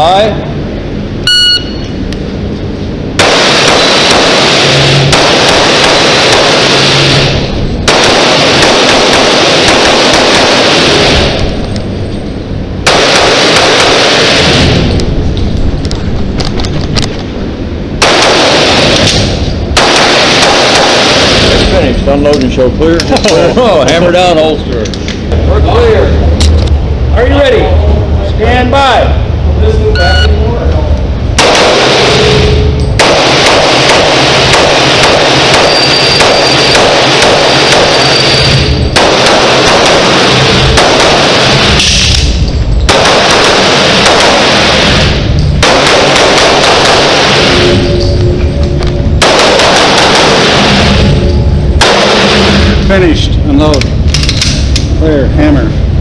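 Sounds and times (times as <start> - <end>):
rapid pistol shots: 3.1 - 11.6, 12.8 - 15.0, 18.0 - 21.9, 31.4 - 47.9, 49.2 - 52.8.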